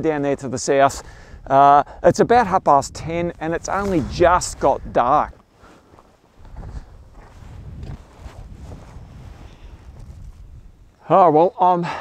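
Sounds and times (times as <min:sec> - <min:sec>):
wind noise on microphone: 0:00.0 - 0:05.5, 0:06.2 - 0:11.0.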